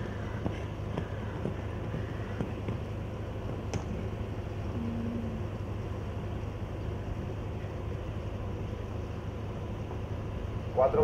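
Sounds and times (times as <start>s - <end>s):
low outdoor rumble: 0.0s - 11.0s
short faint hum: 3.9s - 5.8s.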